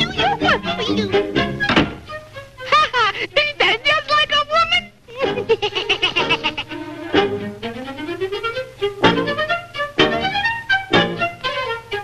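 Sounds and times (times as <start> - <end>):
cartoon music with sliding notes: 0.0 - 2.8, 4.8 - 12.0.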